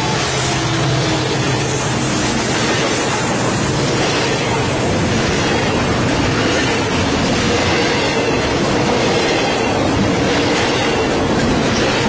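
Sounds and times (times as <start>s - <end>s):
steel train wheels on rails: 0.0s - 12.0s.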